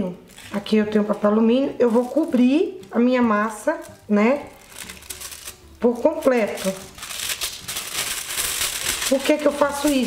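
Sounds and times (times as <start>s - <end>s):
aluminium foil crinkling: 0.2s - 2.9s, 3.5s - 10.0s.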